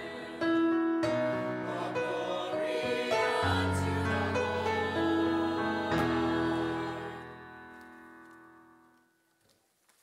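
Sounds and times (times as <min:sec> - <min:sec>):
church choir singing: 0:00.0 - 0:08.0.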